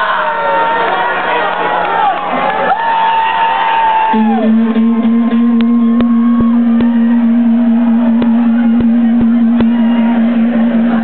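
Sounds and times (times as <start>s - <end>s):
crowd cheering and whooping: 0.0s - 11.0s
long held sliding tones: 4.1s - 11.0s
band playing low sustained note: 4.2s - 11.0s.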